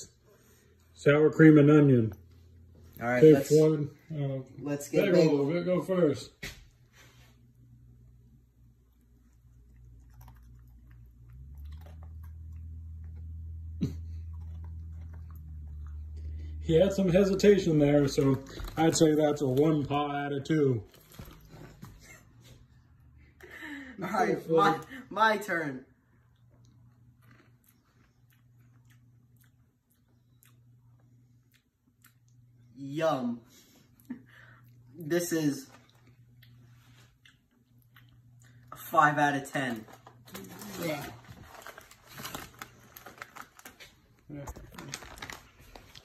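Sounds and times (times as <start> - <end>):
dog licking and chewing: 8.8 - 16.6
snack bag crinkling: 14.2 - 22.0, 39.5 - 46.0.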